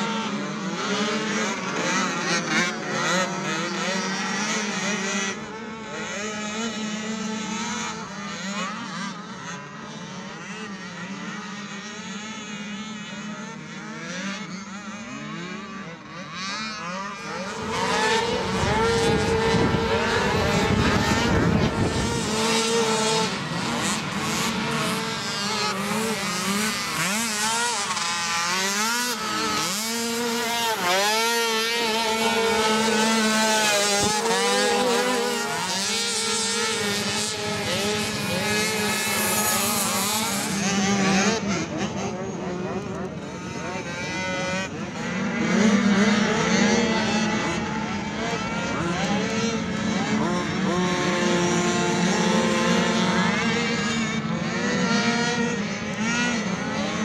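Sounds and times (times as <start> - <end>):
atv engines revving: 0.0 - 57.0.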